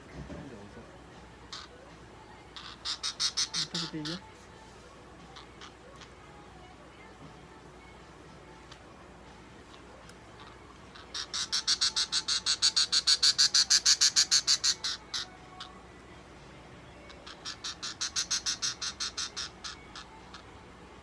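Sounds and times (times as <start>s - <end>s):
budgerigar chirping: 1.5s - 1.8s, 2.5s - 4.2s, 10.4s - 15.8s, 17.1s - 20.6s.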